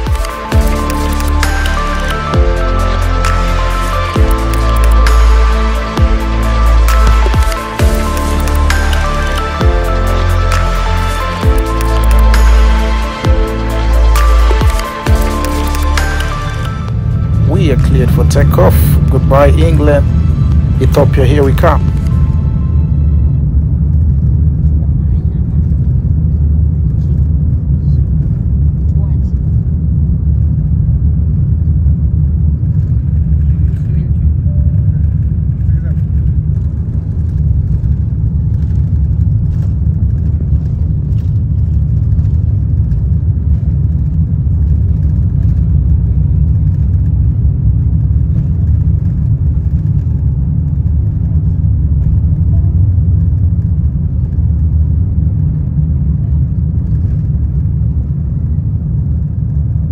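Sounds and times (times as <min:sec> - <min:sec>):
jet engines at takeoff power: 0:00.0 - 0:59.9
runway rumble: 0:00.0 - 0:59.9.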